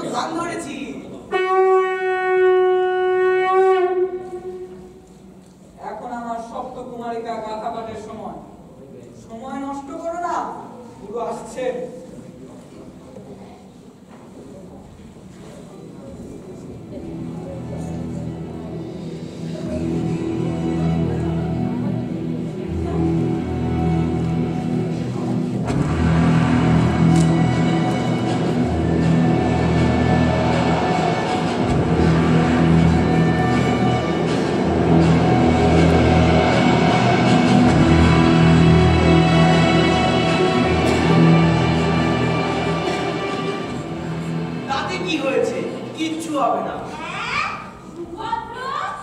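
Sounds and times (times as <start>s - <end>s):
conch shell blown: 1.3s - 5.0s
dark drone music: 17.2s - 44.7s.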